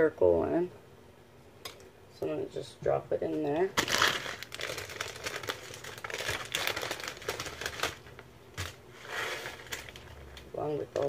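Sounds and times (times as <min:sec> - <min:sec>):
plastic packet crinkling: 0:03.6 - 0:11.0.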